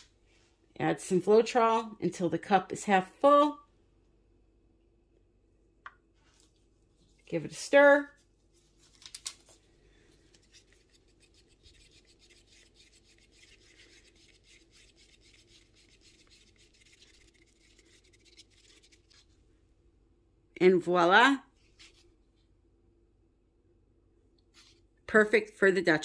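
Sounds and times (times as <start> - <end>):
stick scraping in a plastic cup: 10.4 - 19.3.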